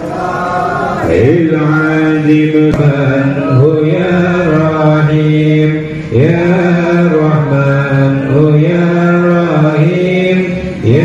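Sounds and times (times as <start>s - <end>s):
man chanting through loudspeaker: 0.0s - 11.0s.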